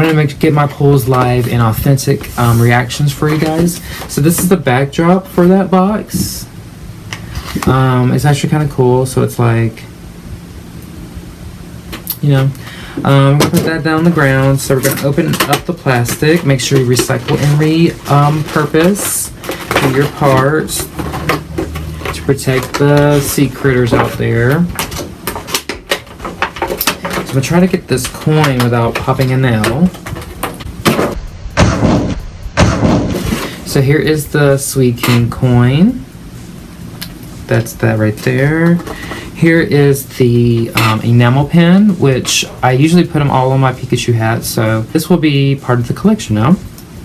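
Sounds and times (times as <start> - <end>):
room tone hiss and hum: 0.0 - 47.0
plastic packaging crackling: 13.1 - 30.8.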